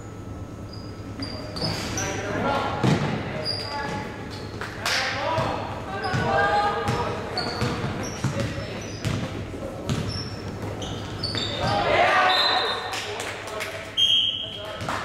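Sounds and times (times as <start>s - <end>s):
sneakers squeaking: 0.1s - 13.0s
basketball bouncing on wooden court: 5.4s - 11.8s
people calling out: 11.4s - 12.9s.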